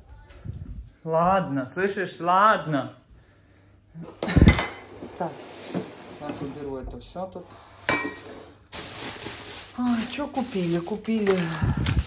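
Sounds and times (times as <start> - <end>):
plastic bag rustling: 7.6 - 12.0.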